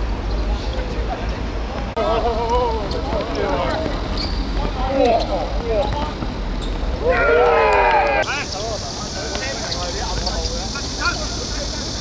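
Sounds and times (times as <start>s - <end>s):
players shouting: 7.0s - 11.6s.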